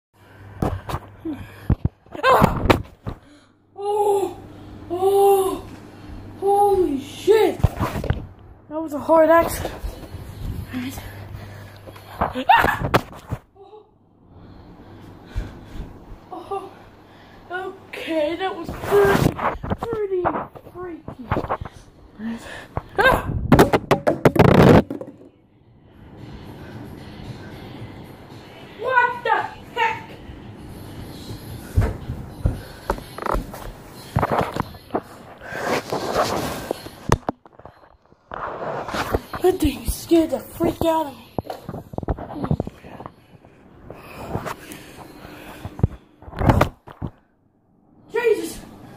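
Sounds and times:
steady low hum: 0:00.2 - 0:48.9
person exclaiming: 0:03.8 - 0:05.7.

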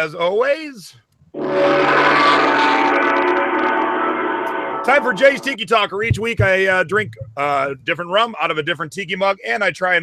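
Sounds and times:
many-toned ringing sound effect: 0:01.4 - 0:05.6.

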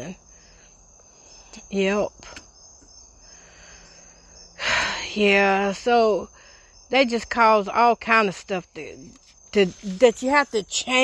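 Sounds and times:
background hiss: 0:00.0 - 0:11.0
crickets chirring: 0:00.0 - 0:11.0.

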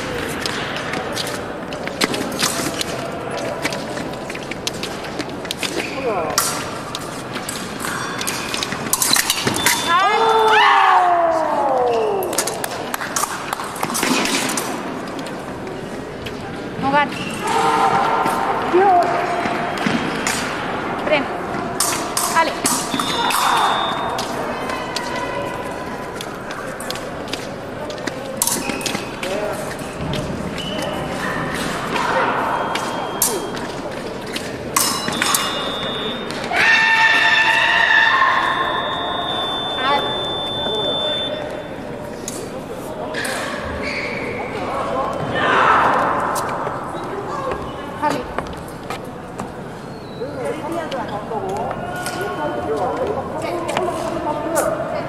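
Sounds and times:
voices in a large hall: 0:00.0 - 0:55.0
electronic scoring beep: 0:38.6 - 0:41.5.

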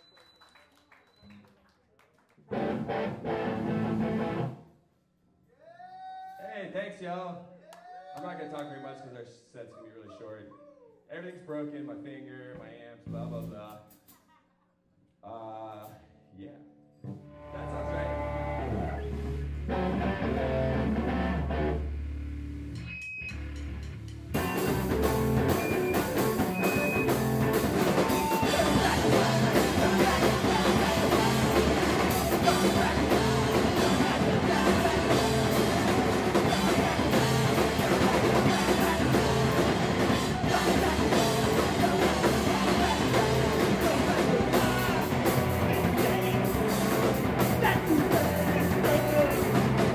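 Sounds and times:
electric guitar notes: 0:02.5 - 0:04.6, 0:16.6 - 0:49.9
rock band playing live: 0:02.5 - 0:04.6, 0:17.4 - 0:22.0, 0:24.3 - 0:49.9
drums: 0:12.5 - 0:14.3, 0:17.0 - 0:49.9.

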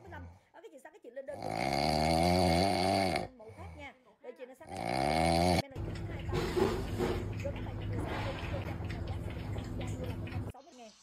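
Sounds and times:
dog snoring: 0:01.4 - 0:03.4, 0:04.7 - 0:05.7.

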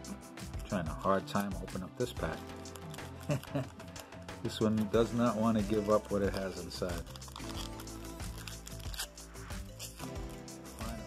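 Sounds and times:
background music: 0:00.0 - 0:11.0
wrapper crinkling rips: 0:02.5 - 0:04.0, 0:06.9 - 0:10.1.

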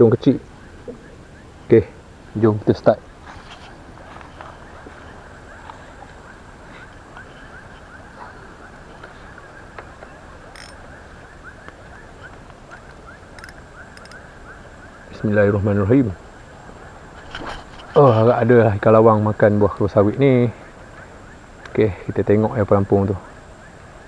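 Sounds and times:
faint chirps: 0:02.7 - 0:18.5
river flowing: 0:03.1 - 0:14.8
sharp clicks: 0:10.4 - 0:10.8, 0:11.6 - 0:14.2.

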